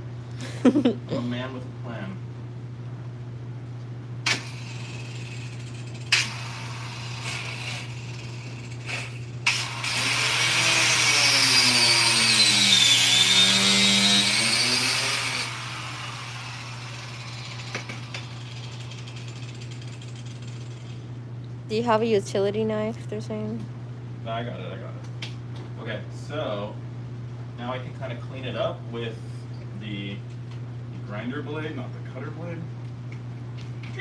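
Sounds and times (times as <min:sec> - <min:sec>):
angle grinder cutting: 0:04.3 - 0:21.0.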